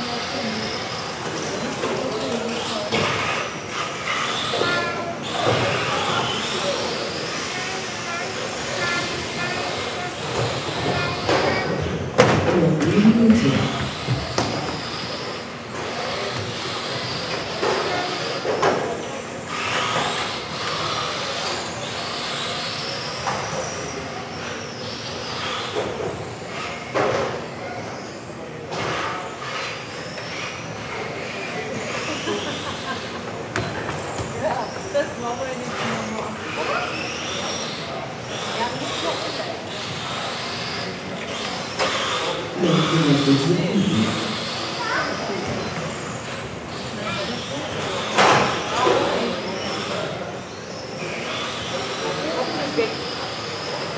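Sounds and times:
electric toy car motors whining: 0.0s - 53.9s.

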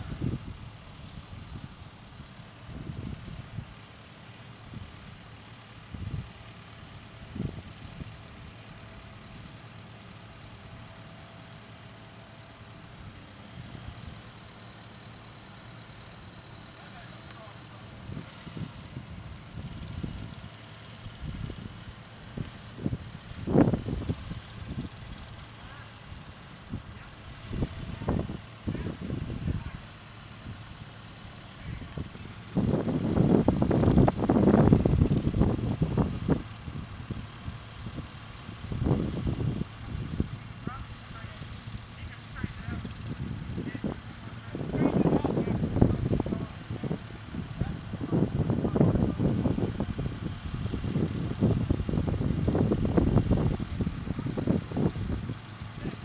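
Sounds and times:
diesel engine running: 0.0s - 56.0s.

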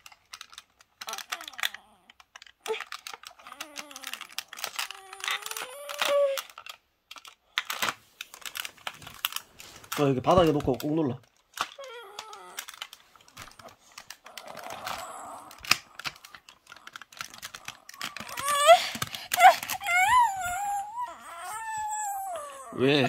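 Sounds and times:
plastic toy clicking: 0.0s - 22.2s
small child whining: 1.0s - 6.6s, 11.6s - 13.6s, 14.2s - 16.2s, 17.4s - 23.0s.

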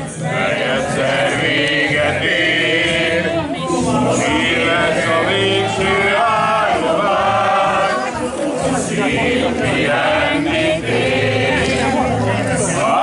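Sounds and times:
group singing folk song: 0.0s - 13.0s.

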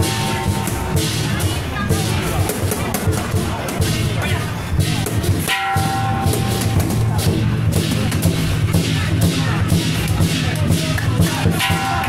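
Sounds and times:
big drum beating: 0.0s - 12.0s
cymbal clashes: 0.0s - 12.0s.

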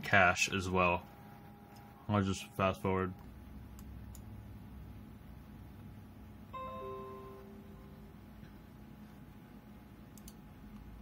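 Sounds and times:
low steady hum: 0.0s - 11.0s
computer notification chime: 6.5s - 8.2s.

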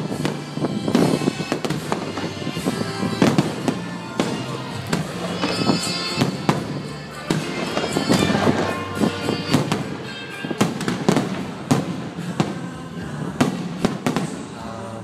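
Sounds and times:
music playing: 0.0s - 15.0s.

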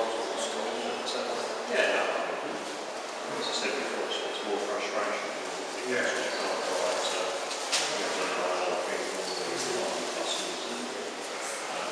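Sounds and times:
people talking in background: 0.0s - 11.9s.

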